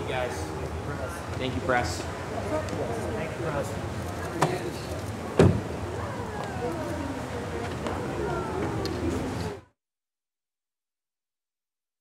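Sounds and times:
murmur of voices: 0.0s - 9.8s
outdoor background noise: 0.0s - 9.8s
heavy thump: 5.4s - 5.7s.

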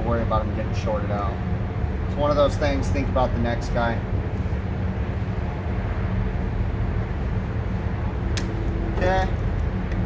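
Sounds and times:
machinery hum: 0.0s - 10.0s
sharp click: 8.3s - 8.8s.

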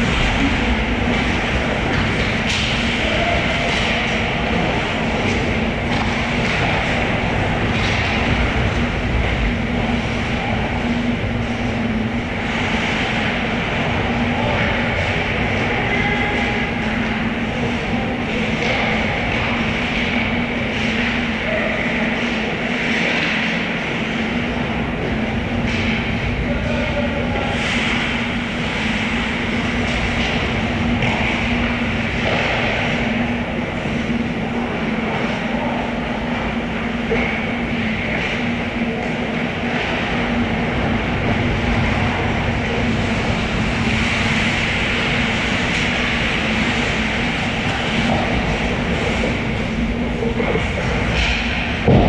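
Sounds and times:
constant low hum: 0.0s - 52.0s
ice rink rumbling ambience: 0.0s - 52.0s.

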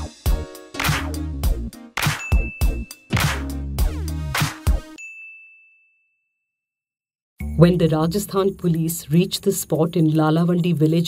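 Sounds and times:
high ding: 2.1s - 3.1s, 5.0s - 6.6s.

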